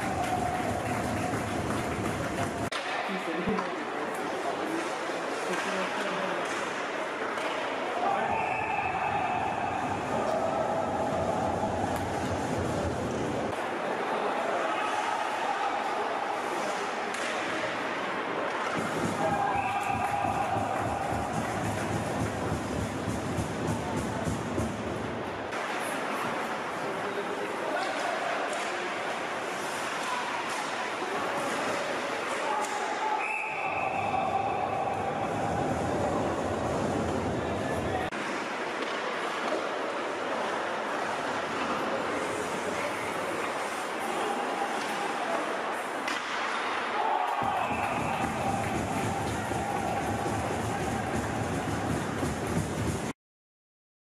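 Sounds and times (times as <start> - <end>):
rumbling ice rink hall din: 0.0 - 53.2.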